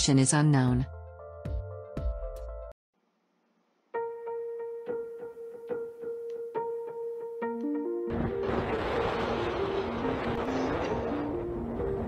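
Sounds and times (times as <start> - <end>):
slow single-note melody: 3.9 - 8.9.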